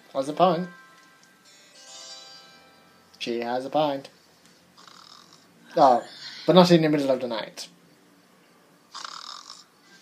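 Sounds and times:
faint snore: 4.8s - 5.5s, 8.9s - 10.0s.

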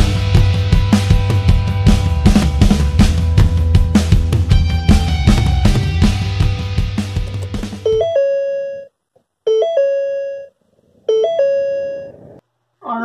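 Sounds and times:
rock music with drums: 0.0s - 8.0s
electronic doorbell chime: 7.8s - 8.9s, 9.5s - 10.5s, 11.1s - 12.1s.

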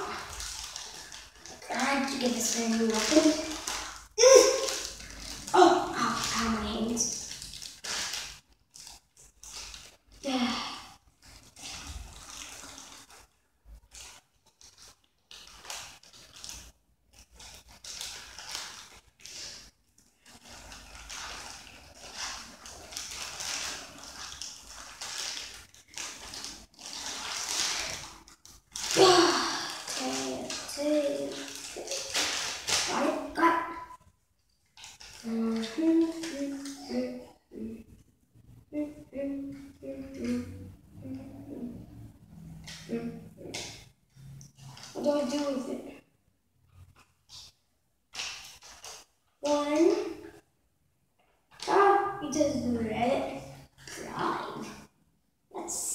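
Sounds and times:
packaging crinkling and tearing: 0.0s - 10.3s, 11.0s - 36.8s, 48.1s - 50.4s.

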